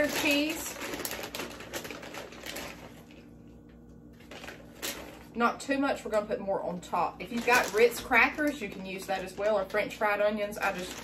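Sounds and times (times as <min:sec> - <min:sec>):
plastic bag crinkling and rustling: 0:00.0 - 0:11.0.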